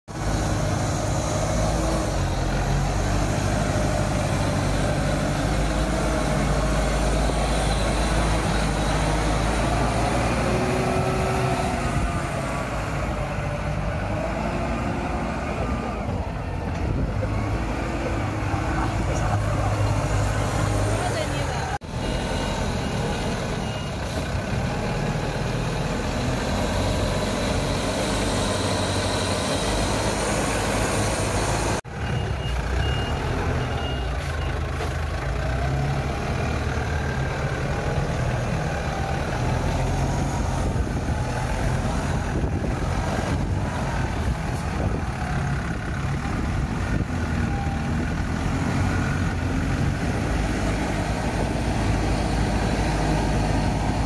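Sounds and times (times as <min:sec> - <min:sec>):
forklift engine running under load: 0:00.1 - 0:54.0.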